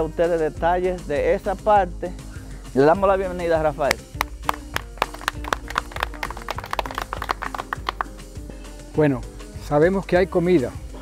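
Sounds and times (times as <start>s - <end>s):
people clapping: 3.9s - 8.3s.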